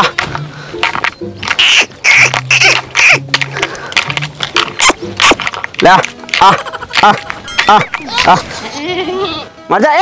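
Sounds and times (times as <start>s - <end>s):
background music: 0.0s - 10.0s
goat bleating: 6.4s - 9.5s.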